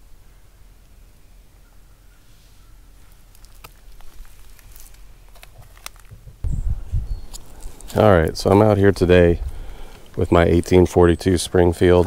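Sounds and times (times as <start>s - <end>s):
footsteps on dry leaves and twigs: 3.0s - 6.2s, 7.2s - 12.0s.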